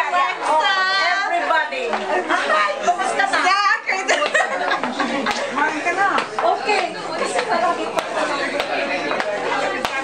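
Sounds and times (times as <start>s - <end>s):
crowd chatting: 0.0s - 10.0s.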